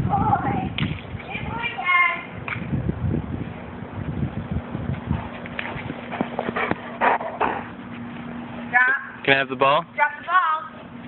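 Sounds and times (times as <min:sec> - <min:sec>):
dog huffing: 0:05.7 - 0:08.1.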